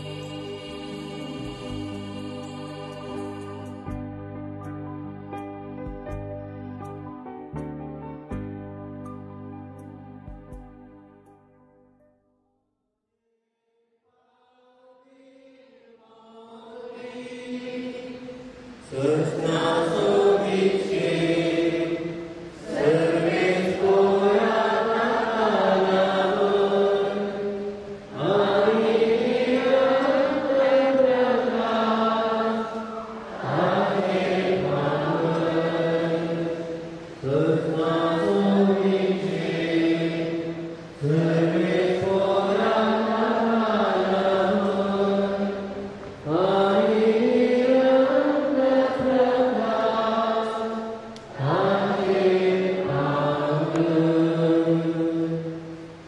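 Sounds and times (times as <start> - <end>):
voices singing a hymn: 0.0 - 4.2, 14.2 - 56.0.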